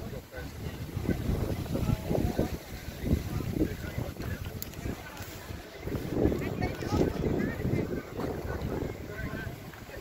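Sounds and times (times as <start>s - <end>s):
faint voices: 0.0s - 10.0s
wind buffeting microphone: 0.0s - 10.0s.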